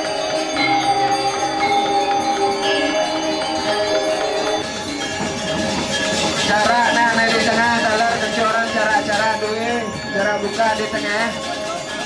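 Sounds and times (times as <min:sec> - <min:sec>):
person singing wavering pitch: 0:00.0 - 0:11.9
gamelan metallophones and gongs: 0:00.0 - 0:12.0.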